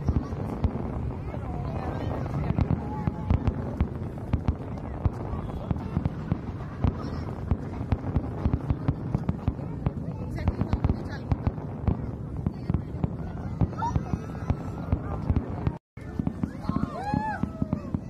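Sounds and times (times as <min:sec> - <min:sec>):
steady rumble: 0:00.0 - 0:16.6
fireworks bangs and crackles: 0:00.0 - 0:18.0.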